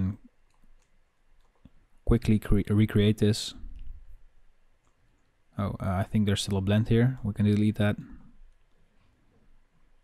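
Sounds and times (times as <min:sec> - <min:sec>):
computer mouse clicks: 0:00.3 - 0:01.8, 0:04.8 - 0:05.4.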